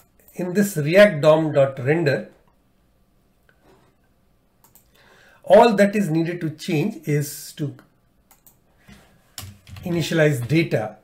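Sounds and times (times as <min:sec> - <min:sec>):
computer keyboard keystrokes: 0:04.6 - 0:04.9, 0:08.3 - 0:08.6, 0:09.4 - 0:10.6.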